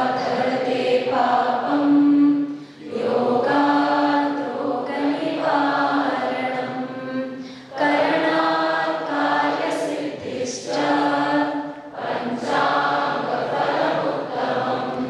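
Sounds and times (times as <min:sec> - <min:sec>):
voices chanting in unison: 0:00.0 - 0:15.0.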